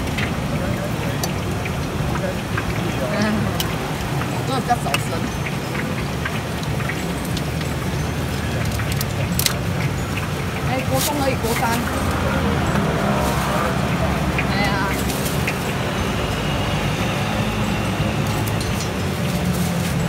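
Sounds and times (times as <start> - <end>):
faint voices: 0.0 - 7.2, 10.6 - 20.0
road traffic rumble: 0.0 - 20.0
paper boxes and plastic bag rustling: 10.7 - 12.0, 12.9 - 13.8, 14.6 - 16.0, 18.1 - 20.0.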